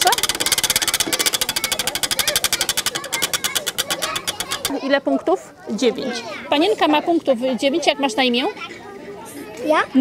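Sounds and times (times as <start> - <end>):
prize wheel pegs clicking: 0.0 - 4.9.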